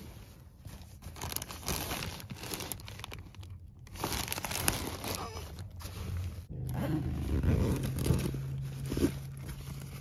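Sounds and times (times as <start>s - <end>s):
plastic bag crinkling: 0.7s - 6.3s.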